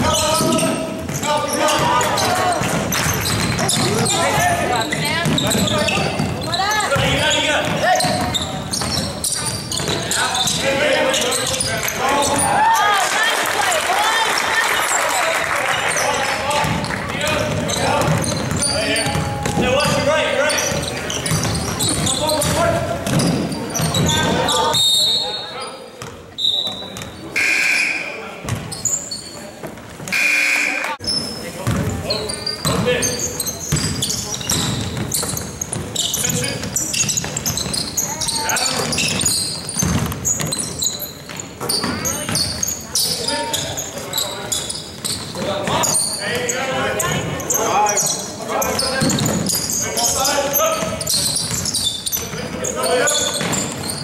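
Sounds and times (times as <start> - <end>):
basketball dribbling on gym floor: 0.1 - 10.6, 16.6 - 20.0, 20.7 - 24.4, 31.6 - 32.0, 33.7 - 42.6.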